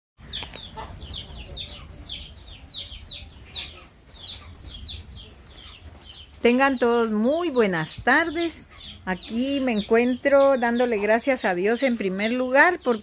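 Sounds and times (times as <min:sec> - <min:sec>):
bird peeping: 0:00.2 - 0:13.0.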